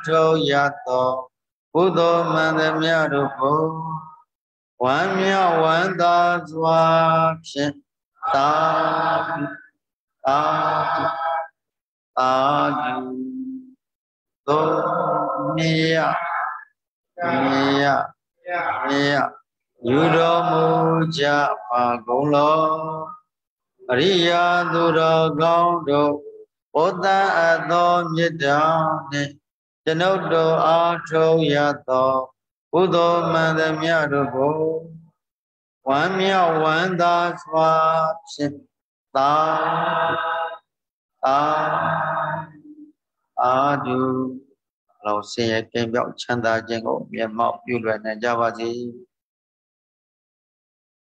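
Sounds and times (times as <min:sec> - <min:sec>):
man chanting in long held tones: 0:00.0 - 0:11.6, 0:12.2 - 0:13.8, 0:14.4 - 0:35.2, 0:35.8 - 0:49.2.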